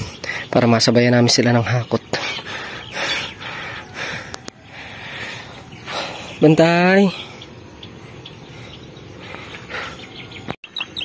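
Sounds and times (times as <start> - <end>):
birds calling: 0.0 - 11.0
open field background noise: 0.0 - 11.0.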